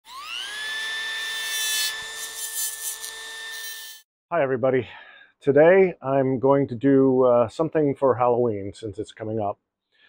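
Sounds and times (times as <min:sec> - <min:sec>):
high-speed motor whine: 0:00.1 - 0:01.4.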